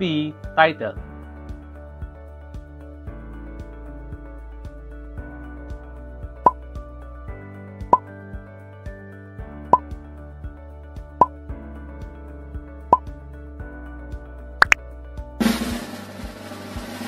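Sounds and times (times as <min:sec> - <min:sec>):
sharp pop: 0:15.4 - 0:16.2.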